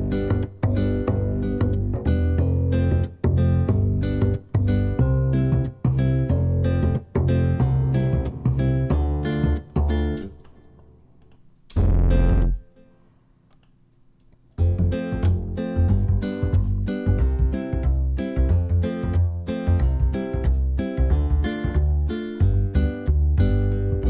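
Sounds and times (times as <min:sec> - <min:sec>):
plucked double bass: 0:00.0 - 0:10.2, 0:11.8 - 0:12.6, 0:14.6 - 0:24.0.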